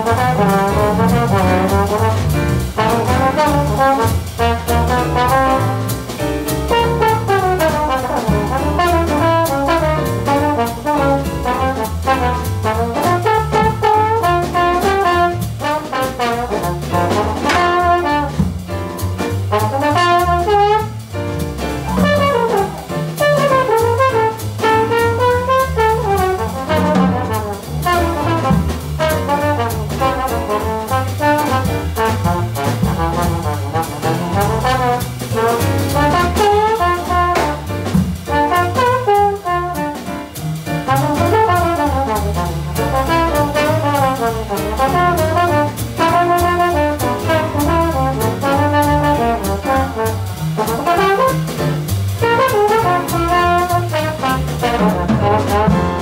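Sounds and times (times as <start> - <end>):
drums: 0.0 - 56.0
trombone jazz solo: 0.0 - 56.0
upright bass: 0.0 - 56.0.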